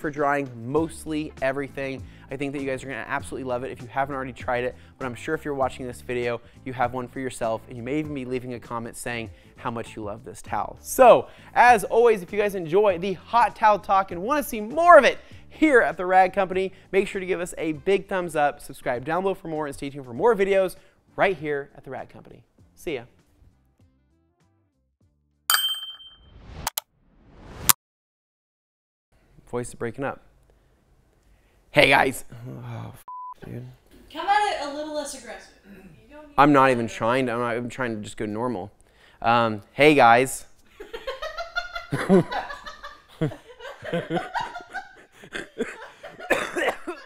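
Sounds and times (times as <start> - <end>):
bright metallic ding: 25.5 - 26.3
man laughing in breathy bursts: 40.7 - 47.0
rough cough-like burst: 46.3 - 47.0.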